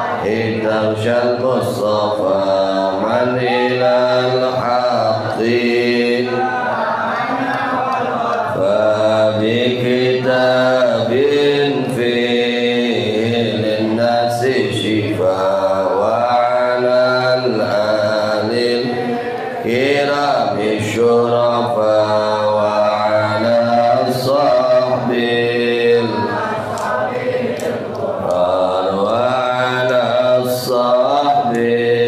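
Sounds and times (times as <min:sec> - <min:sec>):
man chanting into microphone: 0:00.0 - 0:06.5, 0:08.5 - 0:26.6, 0:28.2 - 0:32.0.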